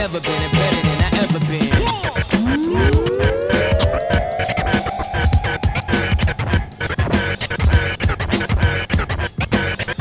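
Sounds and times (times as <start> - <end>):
instrumental hip hop beat: 1.4 - 10.0
rising tone: 2.4 - 7.5
turntable scratching: 2.4 - 7.8.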